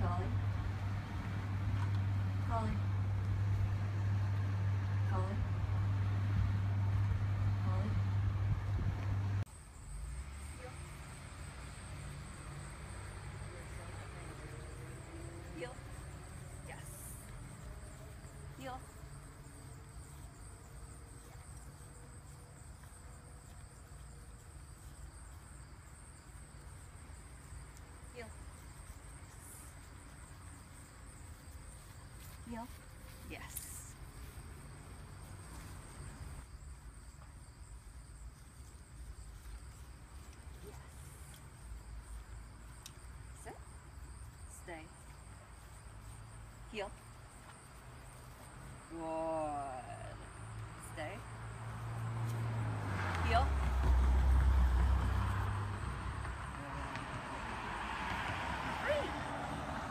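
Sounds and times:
insect drone: 0.0s - 59.9s
low outdoor rumble: 0.0s - 59.9s.

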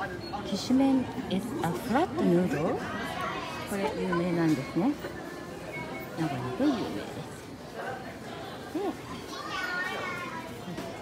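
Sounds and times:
murmur of indoor crowd: 0.0s - 11.0s.

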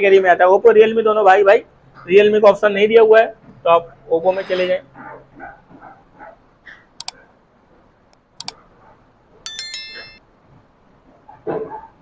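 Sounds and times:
metallic bell-like ring: 9.5s - 10.2s.

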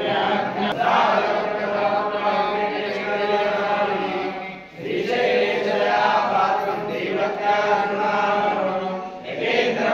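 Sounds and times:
group chanting a hymn: 0.0s - 9.9s.

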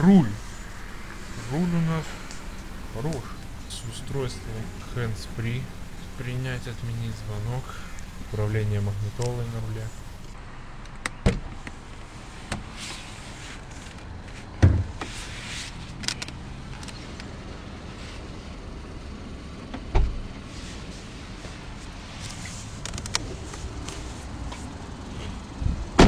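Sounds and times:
car engine idling: 0.0s - 10.9s.

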